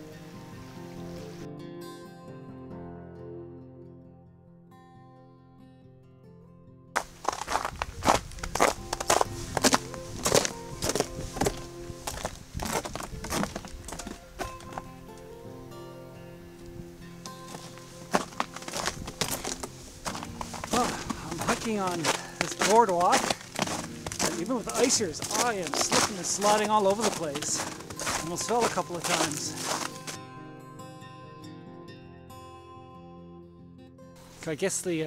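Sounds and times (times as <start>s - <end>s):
background music: 0.0s - 35.0s
footsteps crunching on icy boardwalk: 7.0s - 15.0s, 17.2s - 30.2s.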